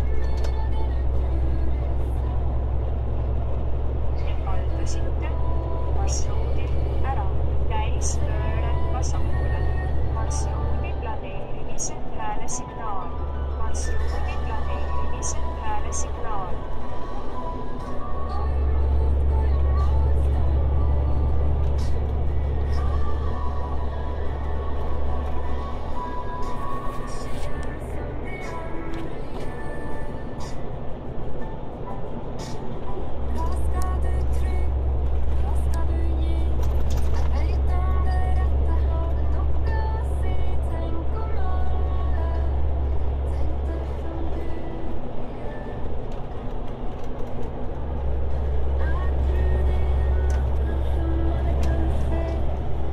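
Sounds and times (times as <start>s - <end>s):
music in car cabin: 0.0s - 52.9s
vehicle engine and road drone: 0.0s - 52.9s
voice in car cabin: 4.2s - 16.6s.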